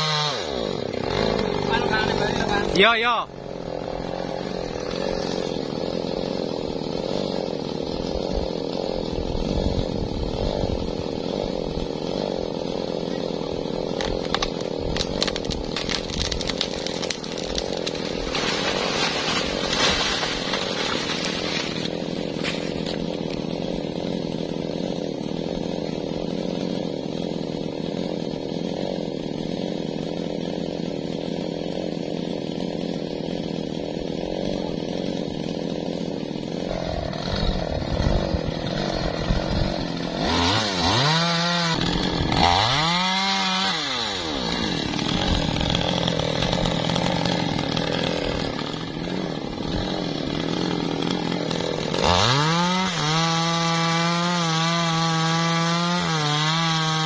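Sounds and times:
chainsaw running: 0:00.0 - 0:57.0
sharp crackles: 0:14.3 - 0:23.0.

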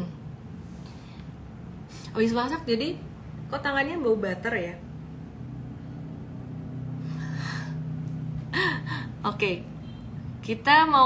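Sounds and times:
low hum: 0:00.0 - 0:10.7
person laughing: 0:08.6 - 0:09.1.

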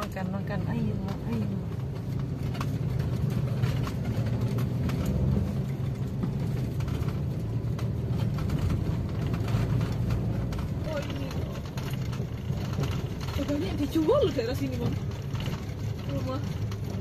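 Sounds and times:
car engine and road noise: 0:00.0 - 0:17.0.

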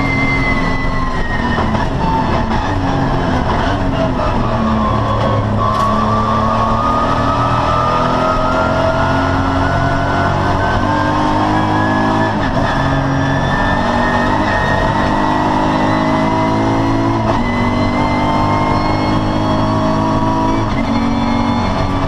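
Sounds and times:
race car engine at hard throttle: 0:00.0 - 0:22.0.

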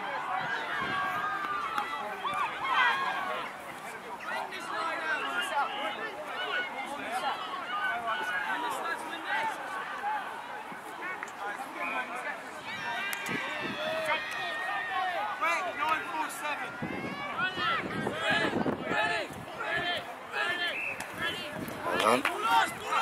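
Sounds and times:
people calling and shouting: 0:00.0 - 0:23.0.

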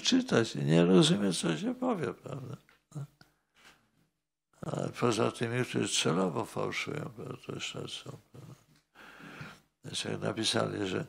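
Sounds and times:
breathy exhale: 0:09.0 - 0:09.7.

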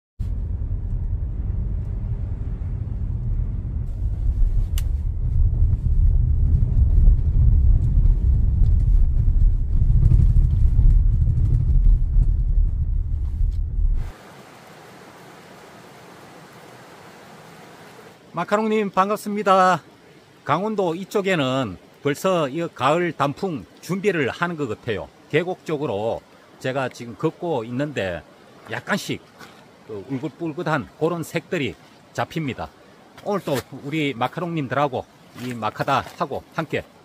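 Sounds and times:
shallow rocky river rushing: 0:14.1 - 0:37.0.

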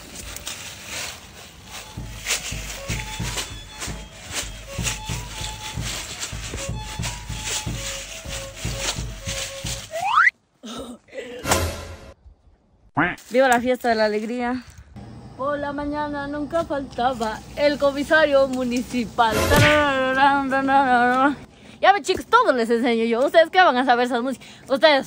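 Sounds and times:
music with steady beat: 0:01.7 - 0:10.1.

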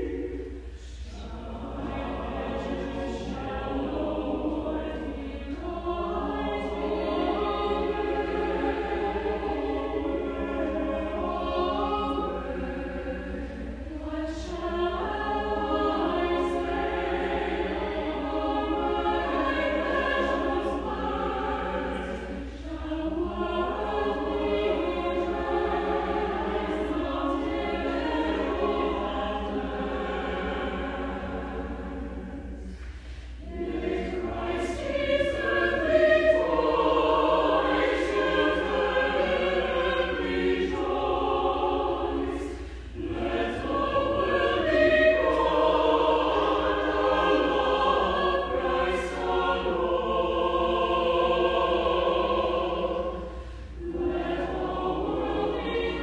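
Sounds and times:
choir singing: 0:00.0 - 0:56.0.

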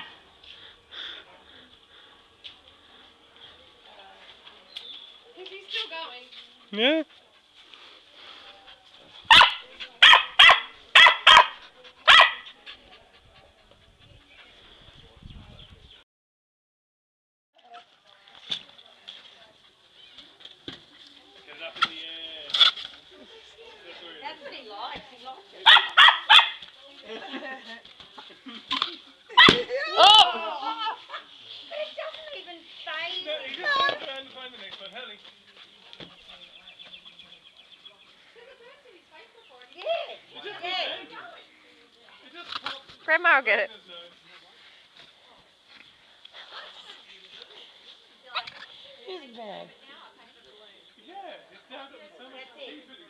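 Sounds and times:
dog barking excitedly: 0:09.3 - 0:12.5, 0:25.6 - 0:26.6.

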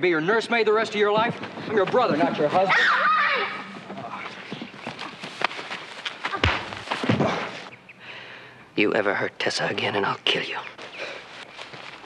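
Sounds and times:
horse hooves on ground: 0:00.3 - 0:07.9, 0:10.1 - 0:12.0.

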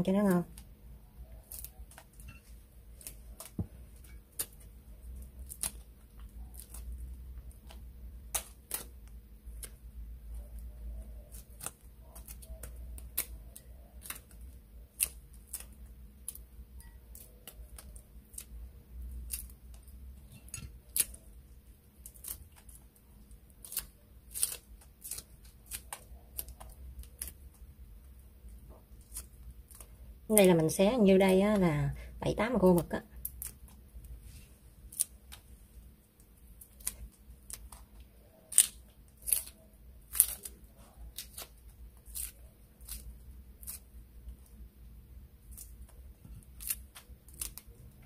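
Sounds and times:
dried squid tearing: 0:00.4 - 0:31.6, 0:32.6 - 0:48.0.

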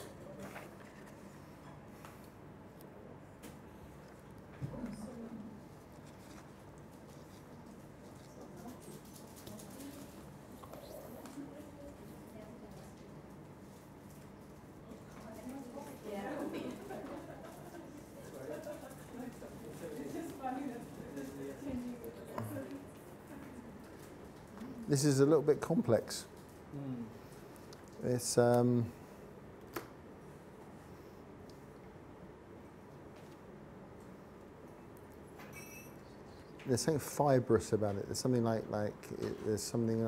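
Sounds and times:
man speaking: 0:24.9 - 0:26.3, 0:28.0 - 0:29.0, 0:36.7 - 0:40.0
person humming: 0:26.7 - 0:27.2.

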